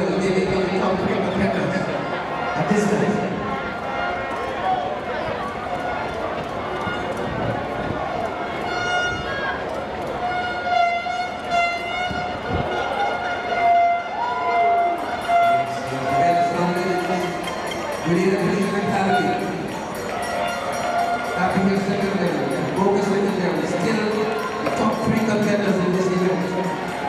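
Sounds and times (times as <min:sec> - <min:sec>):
commentator's voice: 0:00.0 - 0:02.0, 0:15.6 - 0:19.7, 0:21.4 - 0:26.8
stadium crowd hubbub: 0:00.0 - 0:27.0
horn blasts: 0:10.2 - 0:17.6.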